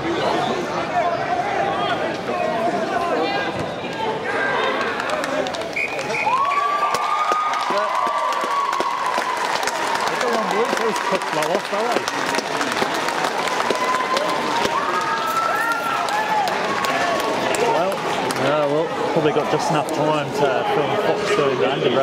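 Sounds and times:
crowd talking and cheering: 0.0 - 22.0.

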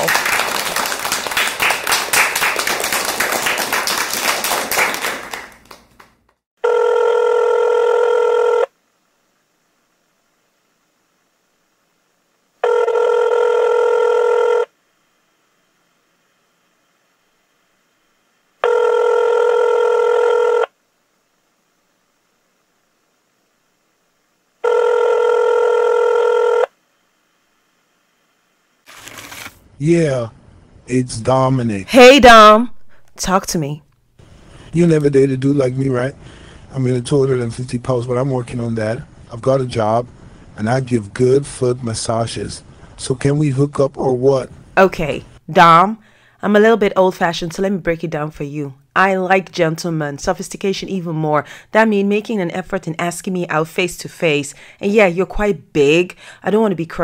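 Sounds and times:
applause: 0.0 - 6.2
telephone ringing: 6.6 - 8.7, 12.6 - 14.7, 18.6 - 20.7, 24.6 - 26.7.

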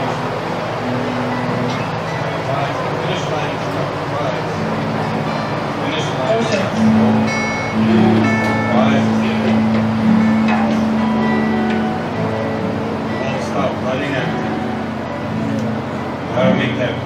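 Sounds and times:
acoustic guitar playing: 0.0 - 17.0
long held low note: 4.1 - 17.0.

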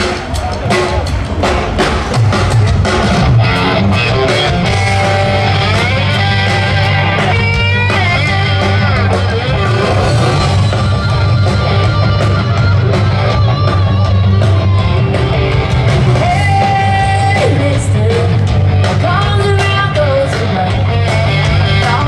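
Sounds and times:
live rock band: 0.0 - 22.0
woman singing: 16.2 - 20.8.

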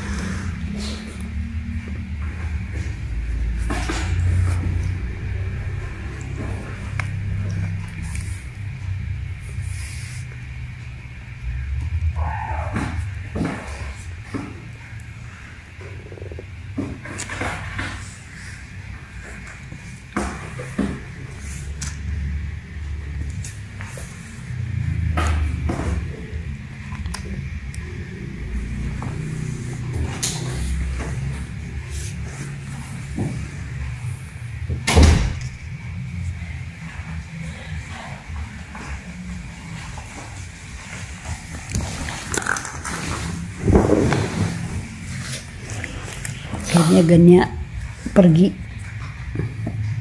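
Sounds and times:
handling noise rumble: 0.0 - 50.0.

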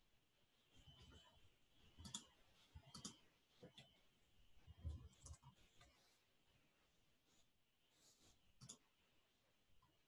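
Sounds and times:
mouse and keyboard clicks: 2.0 - 3.2, 8.6 - 8.8.

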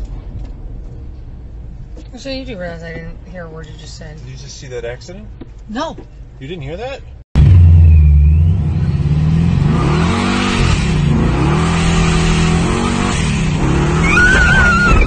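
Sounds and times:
engine revving loudly: 7.4 - 14.6.

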